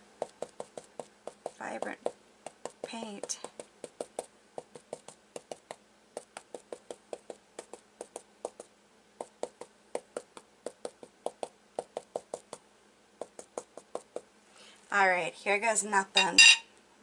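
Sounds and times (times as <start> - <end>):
stencil brush tapping fabric: 0.0 - 12.6, 13.2 - 14.3.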